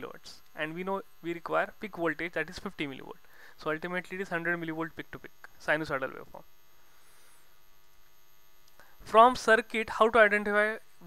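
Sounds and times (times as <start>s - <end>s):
faint electrical hum: 0.0s - 11.0s
low background hiss: 0.0s - 11.0s.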